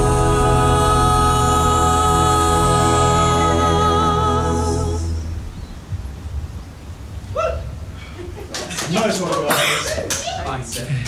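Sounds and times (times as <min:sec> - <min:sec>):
low rumble: 0:00.0 - 0:08.3
high squeal or yelp: 0:07.3 - 0:07.8.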